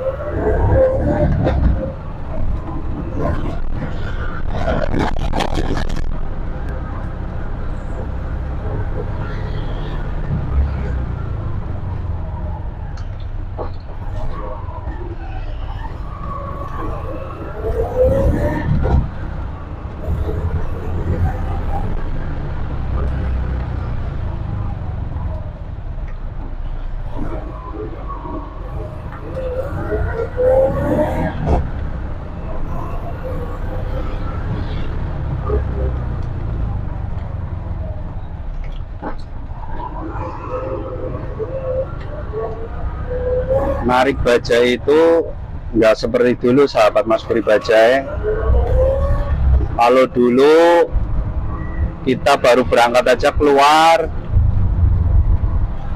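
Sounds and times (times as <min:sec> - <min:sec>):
auto-rickshaw engine running: 0:00.0 - 0:44.2.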